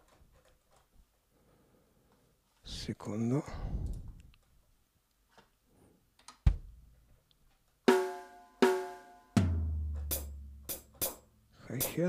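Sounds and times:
pitched drum hits: 7.9 - 11.2
hi-hat strikes: 9.9 - 12.0.

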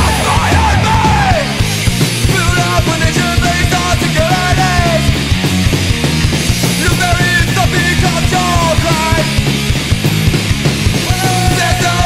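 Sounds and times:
bass guitar: 0.0 - 12.0
distorted electric guitars: 0.0 - 12.0
fast drum hits: 0.0 - 12.0.

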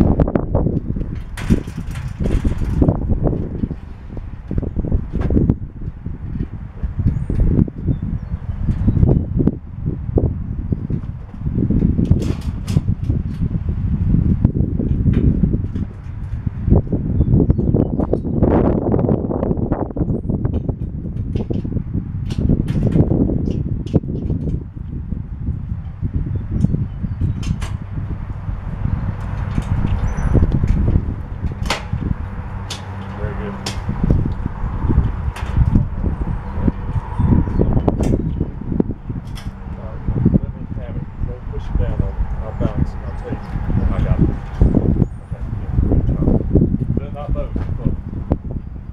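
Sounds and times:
continuous low rumble: 0.0 - 48.9.

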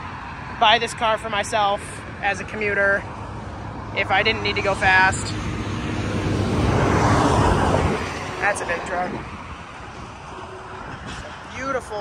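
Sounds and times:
truck driving past: 3.1 - 11.5.

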